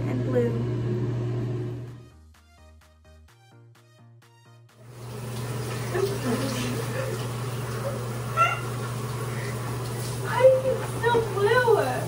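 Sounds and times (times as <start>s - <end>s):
background music: 1.9s - 4.9s
water running from a tap: 4.8s - 12.0s.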